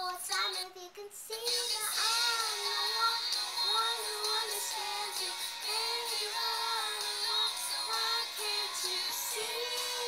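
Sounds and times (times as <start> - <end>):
girl singing pop melody: 0.0 - 10.0.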